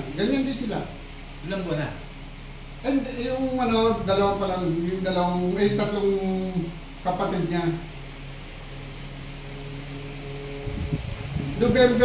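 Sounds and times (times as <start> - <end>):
electric motor humming: 2.8 - 12.0
low bumps: 7.9 - 12.0.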